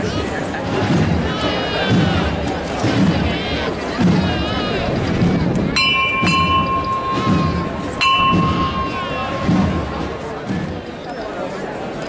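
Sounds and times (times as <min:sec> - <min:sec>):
crowd murmuring: 0:00.0 - 0:12.0
hand bell ringing: 0:05.8 - 0:10.0.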